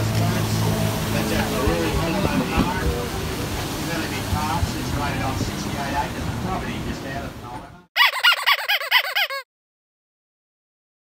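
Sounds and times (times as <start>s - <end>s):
high-pitched laugh: 8.0s - 9.5s.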